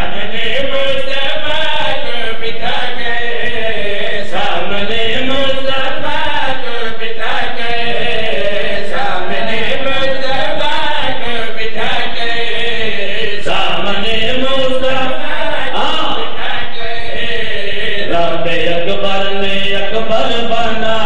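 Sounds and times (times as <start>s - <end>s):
men chanting a melodic lament: 0.0s - 21.0s.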